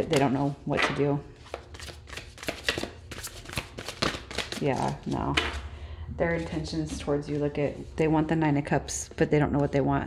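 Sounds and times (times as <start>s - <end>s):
cards being shuffled by hand: 1.4s - 5.2s.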